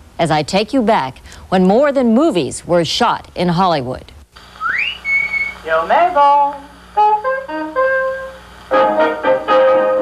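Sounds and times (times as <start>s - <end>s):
rising whistle: 4.6s - 5.7s
brassy music: 7.0s - 10.0s.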